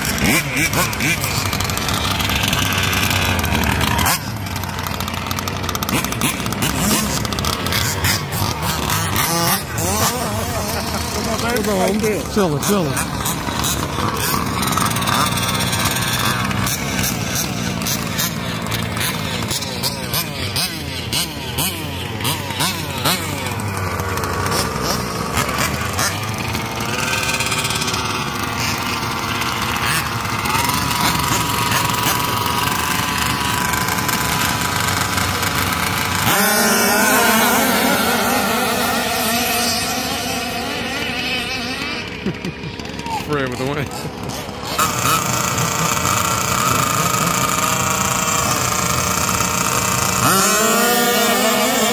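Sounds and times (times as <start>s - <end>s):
small rc car engines revving: 0.0s - 51.9s.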